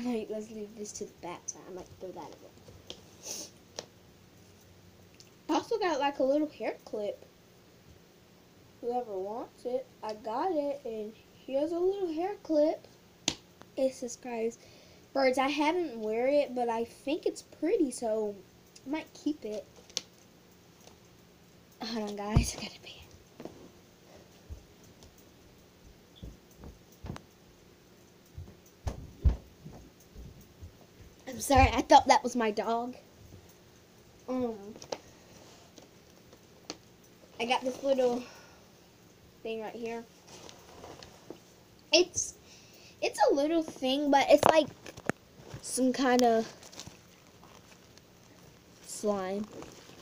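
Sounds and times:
faint thumps and knocks: 25.9 - 27.3, 28.3 - 31.8
faint soft handling sounds: 34.4 - 38.6, 39.5 - 41.6, 43.5 - 50.0.

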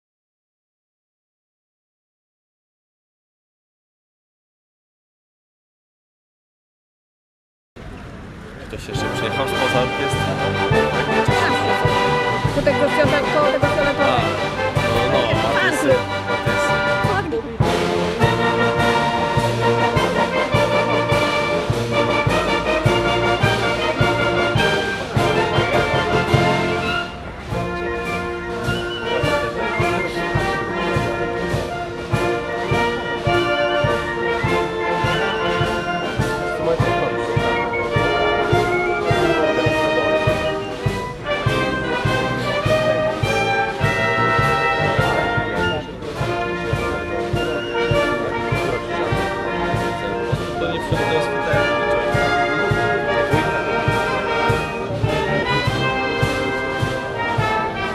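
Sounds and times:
wind band playing march: 8.2 - 57.9
steady drum beat: 8.9 - 57.9.

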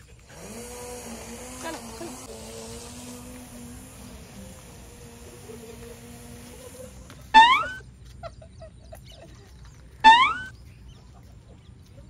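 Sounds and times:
bird calling upward slide: 7.3 - 7.8, 10.0 - 10.5.

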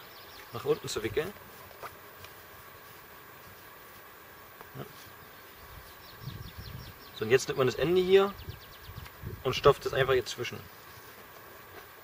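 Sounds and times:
faint steady buzzing: 0.0 - 12.0.

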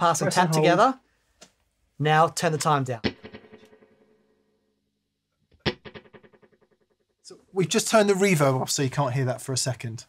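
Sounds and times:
electric guitar with echo repeats: 3.0 - 4.4, 5.6 - 6.8.

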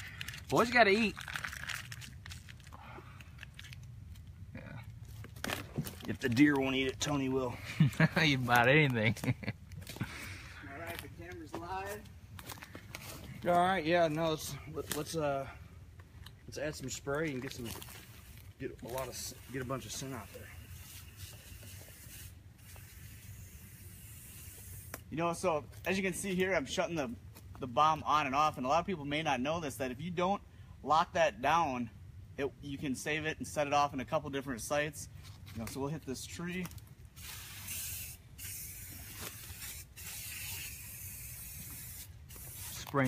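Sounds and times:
aerosol can spraying: 20.0 - 25.0, 37.2 - 43.0.

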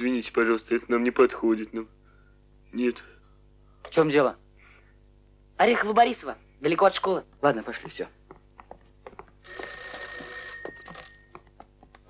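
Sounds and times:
telephone bell ringing: 9.4 - 11.5.

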